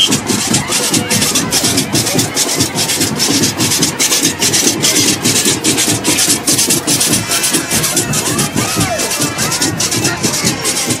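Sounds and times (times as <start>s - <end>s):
band percussion: 0.0s - 11.0s.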